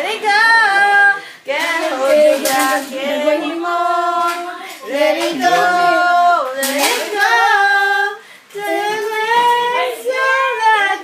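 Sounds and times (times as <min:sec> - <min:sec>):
girl singing unaccompanied: 0:00.0 - 0:11.0.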